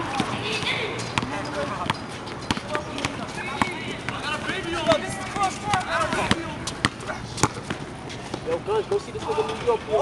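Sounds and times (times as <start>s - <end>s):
basketball bouncing on asphalt: 0.0s - 8.6s
people talking and calling out: 0.0s - 10.0s.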